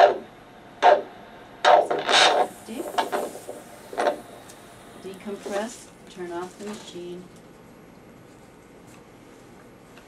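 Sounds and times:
doppler ultrasound pulse beats: 0.0s - 6.0s.

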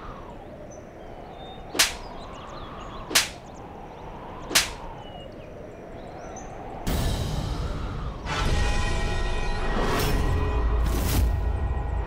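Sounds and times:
faint bird chirps: 0.0s - 6.8s
whip-crack whoosh effects: 1.7s - 2.1s, 3.0s - 3.4s, 4.4s - 4.9s.

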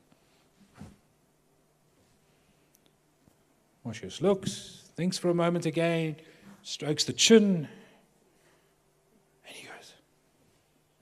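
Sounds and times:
man whispering: 9.4s - 10.1s.

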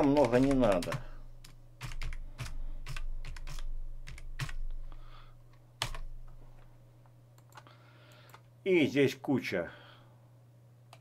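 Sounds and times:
computer keyboard typing: 0.0s - 4.7s, 5.8s - 6.1s.

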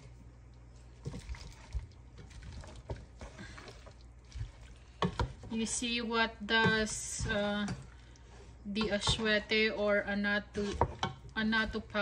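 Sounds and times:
faint frying hiss: 0.0s - 12.0s
wooden spatula scraping a pan: 2.7s - 12.0s.

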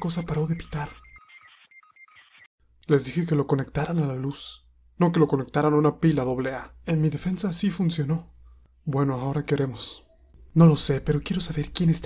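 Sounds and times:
faint electronic beeps: 0.0s - 2.5s.

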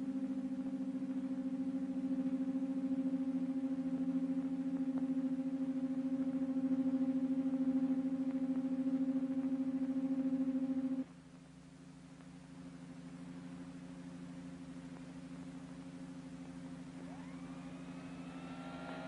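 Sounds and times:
low machinery hum: 0.0s - 19.0s.

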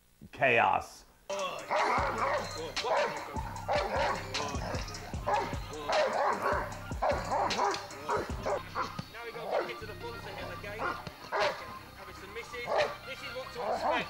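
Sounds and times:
dog barking rapidly: 1.7s - 9.8s, 10.4s - 11.8s, 12.6s - 13.0s, 13.6s - 14.0s.

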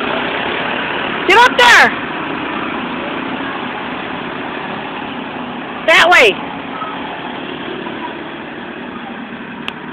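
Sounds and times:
small engines droning: 0.0s - 9.9s.

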